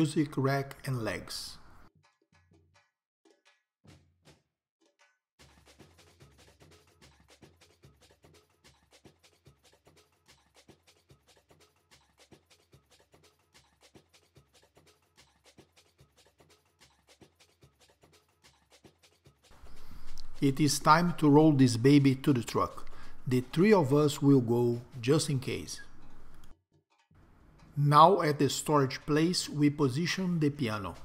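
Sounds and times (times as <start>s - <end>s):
faint music with percussive beat: 1.9s - 21.8s.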